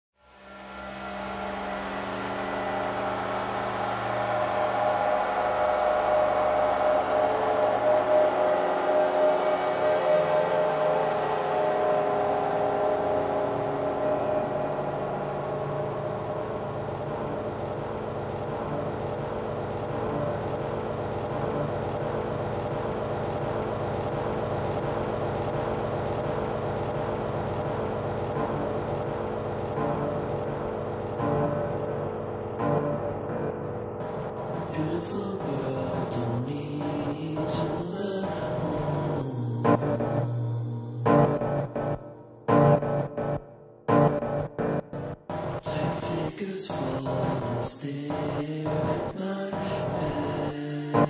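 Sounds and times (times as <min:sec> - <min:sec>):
ambient synth pad chords: 0:00.2 - 0:51.0.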